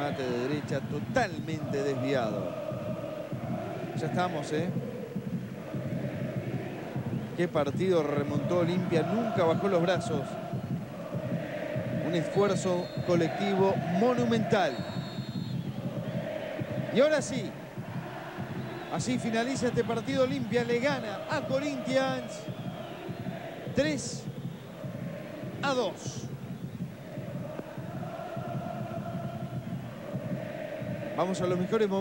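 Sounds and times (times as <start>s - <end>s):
commentator speaking: 0.0s - 2.5s, 7.4s - 10.2s, 18.9s - 22.4s, 25.6s - 26.3s
stadium crowd din: 0.0s - 32.0s.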